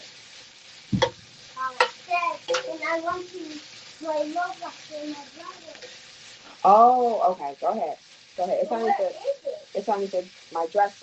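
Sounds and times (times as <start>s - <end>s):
vegetables sizzling in a skillet: 0.0s - 11.0s
child talking quietly: 1.6s - 6.0s.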